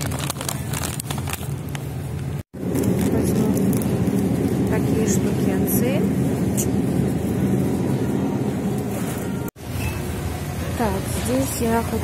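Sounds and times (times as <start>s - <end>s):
supermarket background rumble and hiss: 0.0s - 12.0s.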